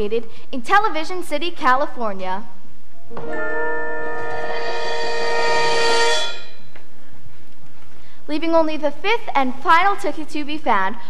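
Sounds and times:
horn-like held chord: 3.1 - 6.7.

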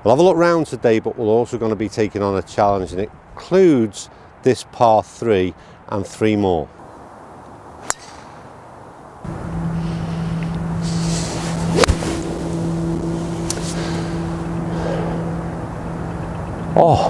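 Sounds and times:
steady low hum: 6.8 - 17.0
club striking golf ball: 7.8 - 8.5, 10.4 - 14.7
golf club swing swish: 7.8 - 8.5, 9.6 - 14.5.

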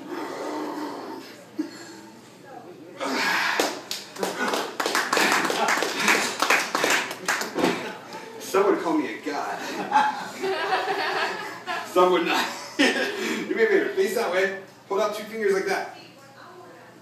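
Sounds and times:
audience clapping: 3.6 - 7.7
audience laughing: 9.6 - 13.4.

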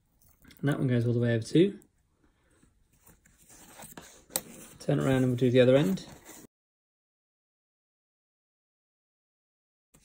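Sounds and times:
card rustling and scraping: 2.9 - 6.5.

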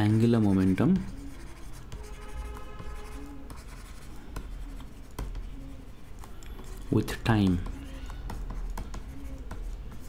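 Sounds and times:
stylus tapping and scratching on screen: 0.0 - 10.0.

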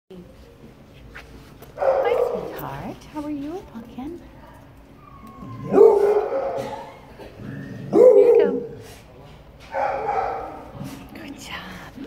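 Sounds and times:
low background noise: 0.1 - 12.0
dog barking loudly: 1.8 - 2.6, 5.7 - 6.9, 7.9 - 8.7, 9.7 - 10.8.

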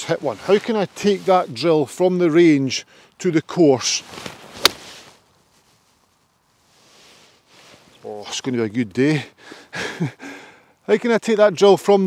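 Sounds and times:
soft hiss: 0.0 - 12.0.

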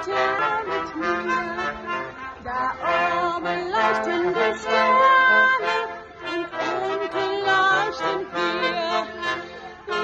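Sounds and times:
brass band playing: 0.0 - 10.0.

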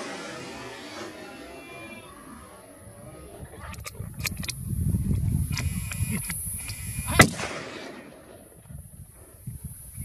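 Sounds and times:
low rumbling noise: 0.0 - 10.0
rifle shot with echo: 7.1 - 8.6.

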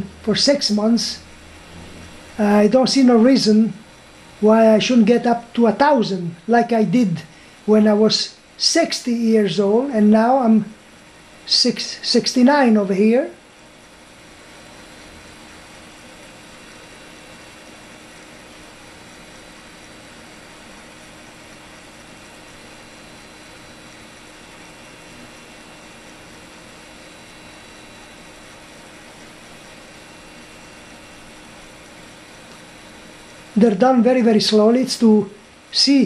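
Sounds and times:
faint hum: 0.0 - 36.0
steady hiss: 0.0 - 36.0.

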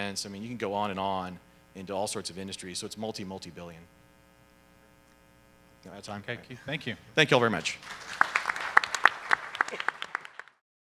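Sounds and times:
faint electrical buzzing hum: 0.0 - 10.5.

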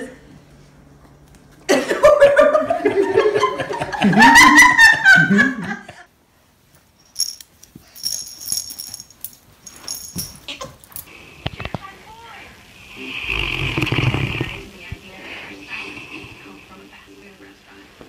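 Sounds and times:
dog snoring: 12.8 - 14.9, 15.6 - 17.0.

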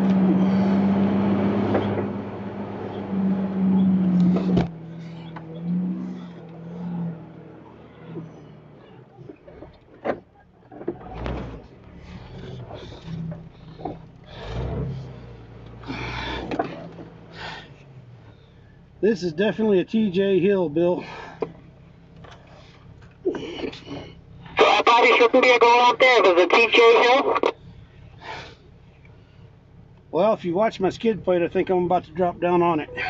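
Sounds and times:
loud steady hum: 24.6 - 27.6.

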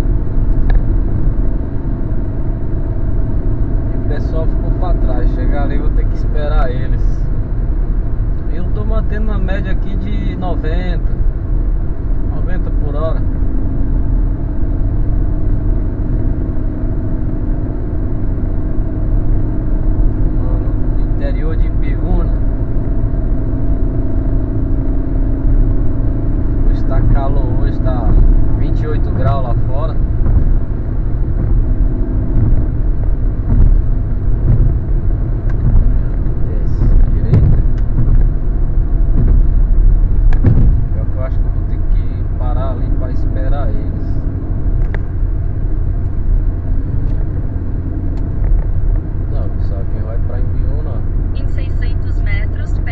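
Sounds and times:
car engine drone: 0.0 - 52.9
road and tyre rumble: 0.0 - 52.9.

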